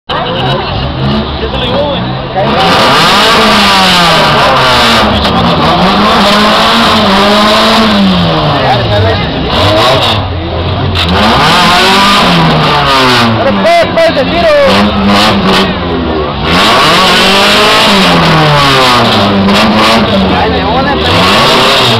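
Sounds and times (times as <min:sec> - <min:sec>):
car engines revving hard: 0:00.1 - 0:21.9.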